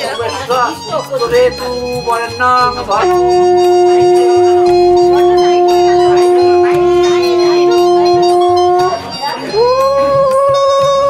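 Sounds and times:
conch shell blown: 0.8 - 11.0.

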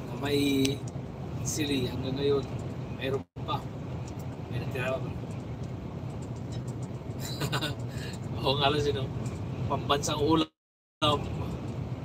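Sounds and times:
lorry engine and tyres droning: 0.0 - 12.0.

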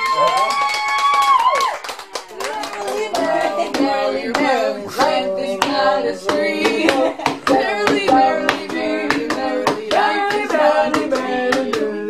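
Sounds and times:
women singing: 2.3 - 12.0
hand strokes keeping a beat: 2.5 - 12.0.

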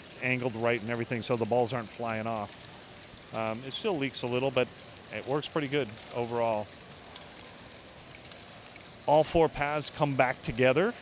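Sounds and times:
plastic balls pattering in machinery: 0.0 - 11.0.

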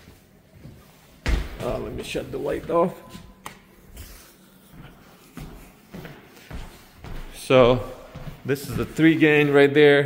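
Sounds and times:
footsteps going down stairs: 0.0 - 9.6.

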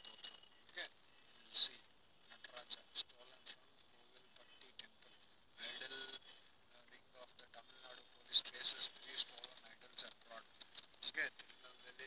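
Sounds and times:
faint voices talking: 0.0 - 12.0
sharp crinkling clicks: 9.0 - 11.6.

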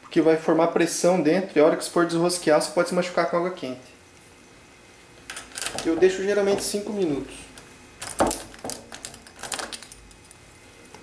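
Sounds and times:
man's voice: 5.8 - 7.5.

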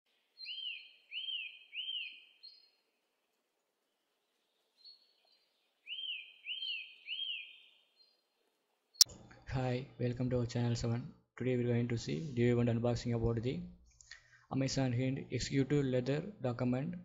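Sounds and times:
bird-like chirping: 0.1 - 2.8, 4.8 - 8.2.

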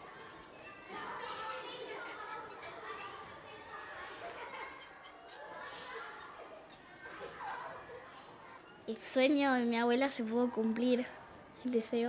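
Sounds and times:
young children talking and calling: 0.0 - 12.0.

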